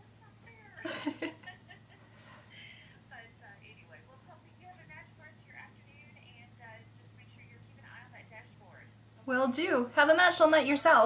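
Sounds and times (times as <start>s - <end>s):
woman's voice through phone earpiece: 0.0s - 1.3s, 2.5s - 11.0s
steady low hum: 0.0s - 11.0s.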